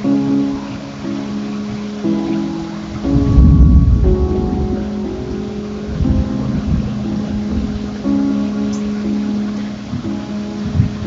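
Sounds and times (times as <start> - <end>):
background music with held chords: 0.0 - 11.0
steady rain: 0.0 - 11.0
thunder rumbling: 2.9 - 8.8.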